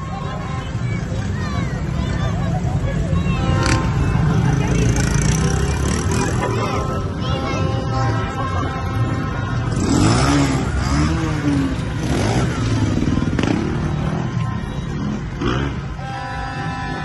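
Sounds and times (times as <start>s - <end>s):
engines revving: 0.0s - 17.0s
scooters and cars passing: 0.0s - 17.0s.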